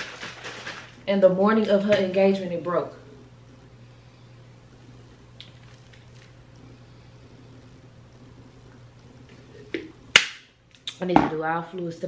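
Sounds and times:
low hum: 0.0s - 10.7s.

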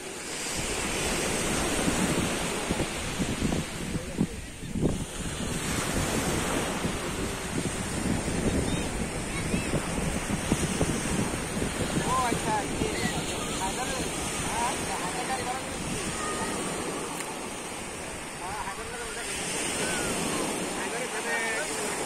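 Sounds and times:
wind buffeting microphone: 0.0s - 20.9s
distant surf: 0.0s - 22.0s.

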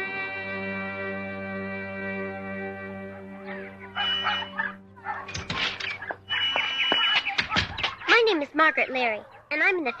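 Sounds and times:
held chord of theme music: 0.0s - 5.5s
birds chirping: 2.9s - 10.0s.

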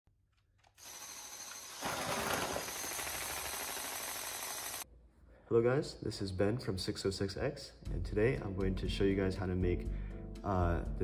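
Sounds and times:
robot motors whirring rattle: 0.8s - 4.8s.

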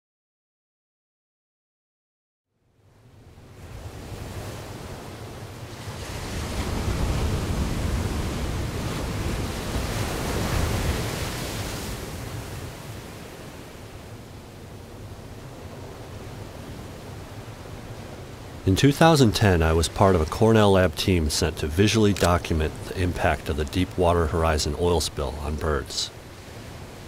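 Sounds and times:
sea surf breaking: 3.6s - 27.0s.

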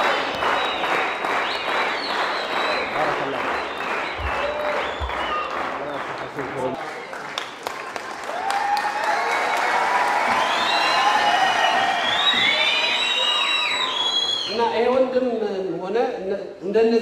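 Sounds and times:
audience applauding and cheering: 0.0s - 14.6s.

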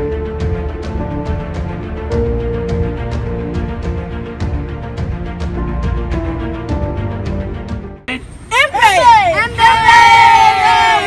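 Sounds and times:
children whooping: 8.5s - 11.0s.

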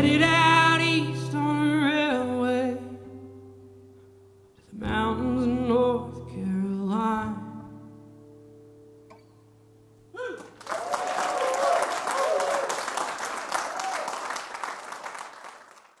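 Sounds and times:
audience applause and cheering: 10.4s - 16.0s.

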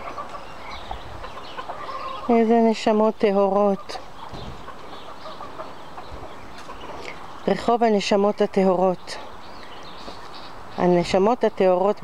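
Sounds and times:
ducklings calling softly: 0.0s - 12.0s.

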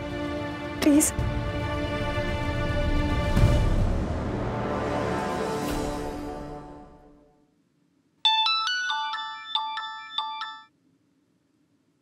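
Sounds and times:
phone ringtone melody: 8.2s - 10.7s.

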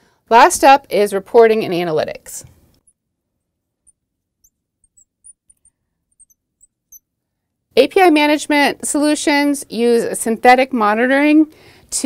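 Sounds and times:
marker squeaking on glass: 2.8s - 7.1s.

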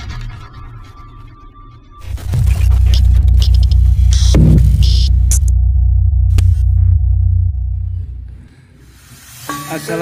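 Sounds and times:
crackling digital glitch bursts: 2.0s - 5.5s
deep throbbing electronic drone: 2.0s - 8.8s.

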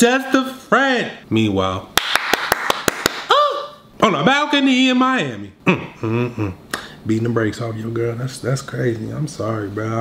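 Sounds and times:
hand claps: 2.0s - 3.3s
person humming mm: 5.7s - 6.9s.

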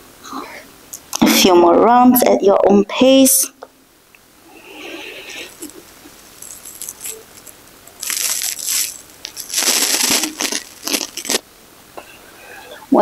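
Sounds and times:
body rustling on yoga mat: 5.5s - 11.4s.

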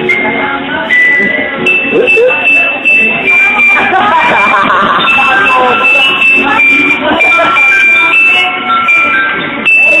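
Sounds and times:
high electronic beeping melody: 0.9s - 10.0s.

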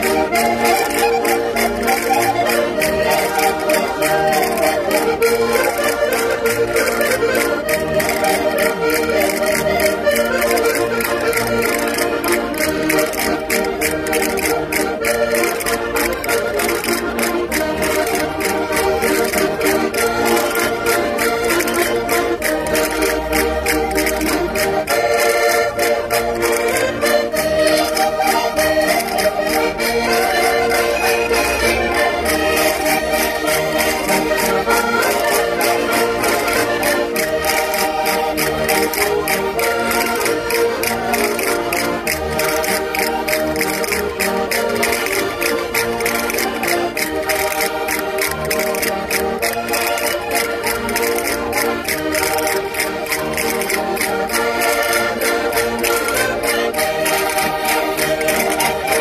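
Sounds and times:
button accordions playing folk tune: 0.0s - 59.0s
steady clicking beat: 0.0s - 59.0s.

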